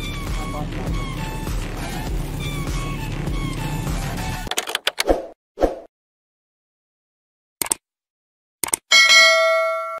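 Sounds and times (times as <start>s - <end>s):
notification bell chime: 8.9s - 10.0s.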